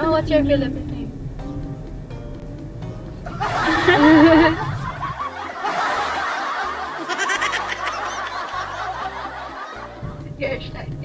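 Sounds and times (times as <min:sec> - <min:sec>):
background music with bass line: 0:00.0 - 0:11.0
women laughing and giggling: 0:03.3 - 0:10.2.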